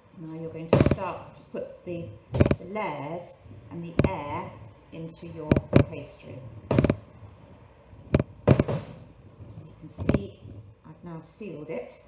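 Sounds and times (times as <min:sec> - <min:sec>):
rolling pin knocking on worktop: 0:06.7 - 0:07.0, 0:08.2 - 0:09.0.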